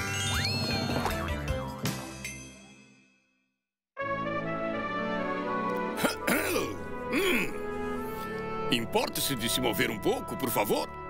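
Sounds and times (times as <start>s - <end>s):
soft background music: 4.0s - 11.0s
cartoon voice clearing throat: 6.0s - 7.6s.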